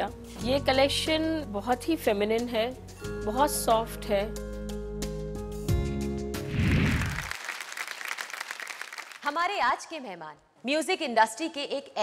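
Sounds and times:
audience applause: 0:06.6 - 0:09.3.

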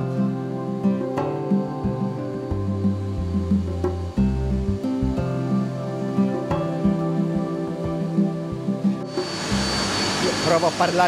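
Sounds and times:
soft guitar music: 0:00.0 - 0:11.0
thin high machine whine: 0:05.4 - 0:11.0.

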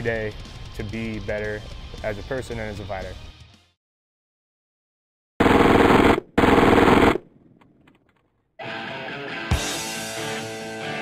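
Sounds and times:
submachine gun automatic bursts: 0:05.4 - 0:07.3.

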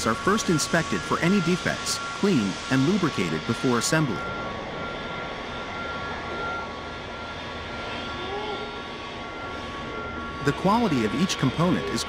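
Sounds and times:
rushing jet-like machinery: 0:00.0 - 0:12.0.

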